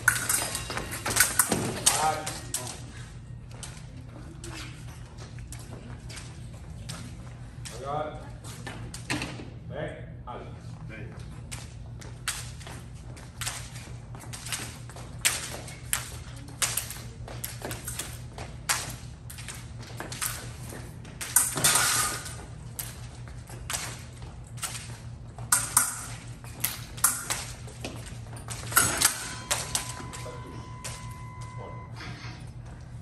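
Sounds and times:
metal blades clinking: 0.0s - 2.7s, 28.5s - 30.2s.

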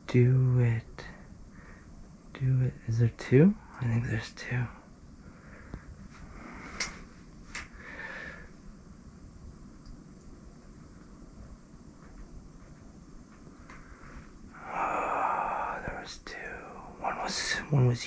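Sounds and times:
man breathing: 1.1s - 2.0s, 7.7s - 8.6s, 13.7s - 15.9s.

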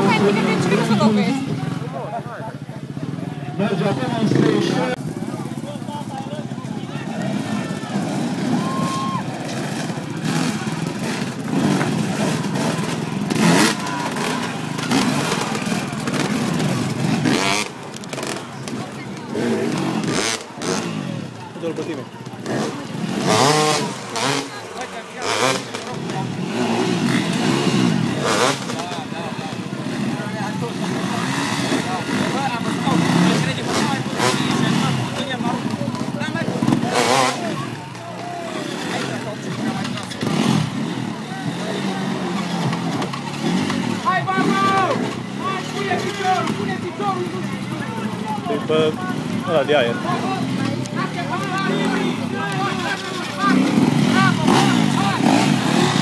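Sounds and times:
crowd chatter: 0.0s - 56.0s
motorcycle engines revving: 0.0s - 56.0s.

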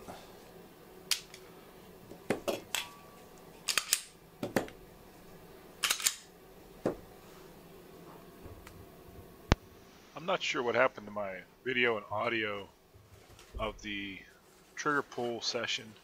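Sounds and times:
pistol magazines clicking and clacking: 3.6s - 4.1s, 5.8s - 6.3s.

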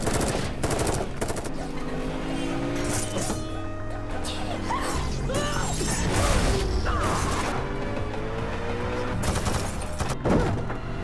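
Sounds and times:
gunfire bursts: 0.0s - 1.7s, 9.1s - 10.2s.

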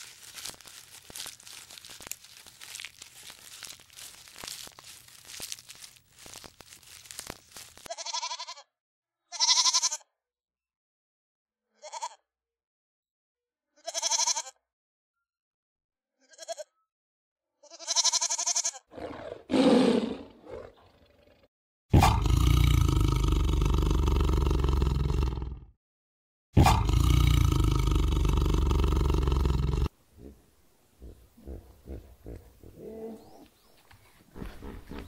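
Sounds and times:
tiger roaring: 18.9s - 25.7s, 26.6s - 30.4s.

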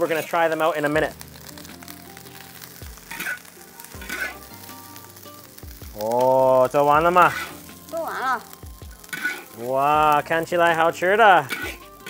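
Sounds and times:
metal spatula scraping wok: 0.0s - 0.8s, 3.0s - 4.7s, 6.0s - 12.0s
rice sizzling in a wok: 0.0s - 12.0s
soft background music: 0.0s - 12.0s.

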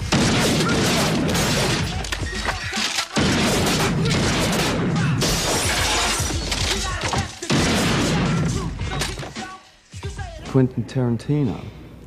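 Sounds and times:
glass shattering: 0.2s - 8.2s.

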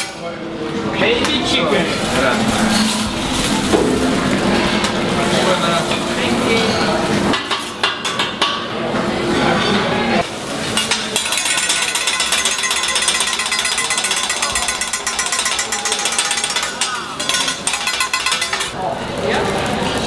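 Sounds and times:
metal spatulas clattering on griddle: 10.7s - 18.8s.

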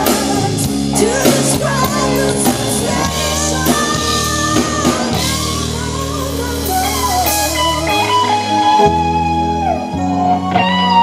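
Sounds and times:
lead electric guitar melody: 0.0s - 11.0s
live rock band: 0.0s - 11.0s.

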